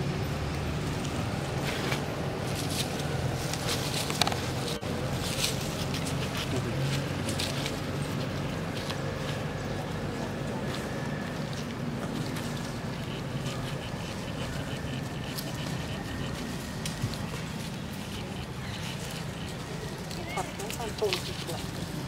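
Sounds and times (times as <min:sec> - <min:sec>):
low engine hum: 0:00.0 - 0:22.0.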